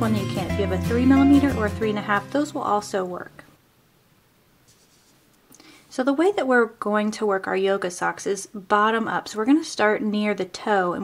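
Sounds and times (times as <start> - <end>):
person speaking: 0.0 - 3.5
faint rustling of yarn: 4.5 - 6.3
soft breath in: 5.5 - 5.9.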